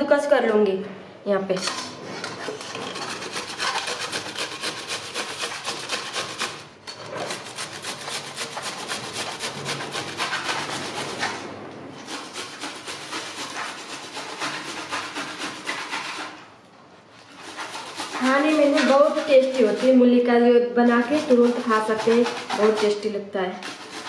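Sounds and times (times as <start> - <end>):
radish grated on steel grater: 1.6 - 11.4, 12.0 - 16.4, 17.1 - 24.0.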